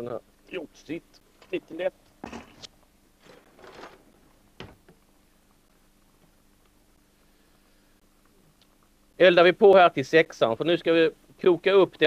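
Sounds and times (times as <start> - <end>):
handling rustle: 1.3 - 4.9
scraping rustle: 2.2 - 4.2.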